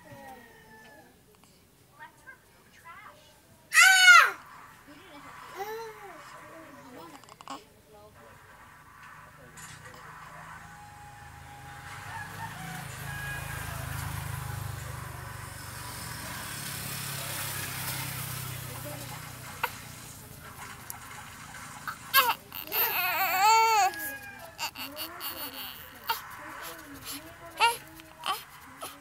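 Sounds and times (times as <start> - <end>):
baby crying: 3.7 - 4.4, 22.1 - 29.0.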